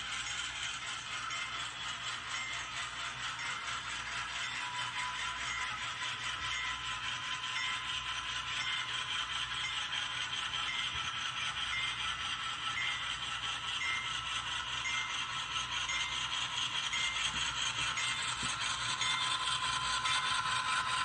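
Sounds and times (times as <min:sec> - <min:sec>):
model train wheels rattling: 0:00.0 - 0:21.0.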